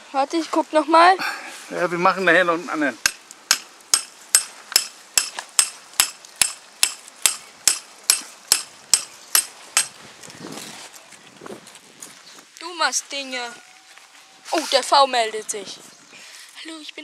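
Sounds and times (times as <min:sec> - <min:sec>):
hammer driving stake into ground: 0:03.0 - 0:10.0.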